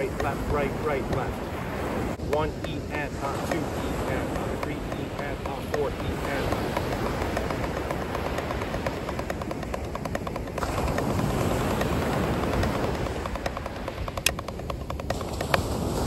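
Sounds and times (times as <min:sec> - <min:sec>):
drumsticks tapping a practice pad: 0:00.0 - 0:01.4, 0:02.2 - 0:16.0
surf: 0:00.0 - 0:16.0
wind on microphone: 0:00.0 - 0:16.0.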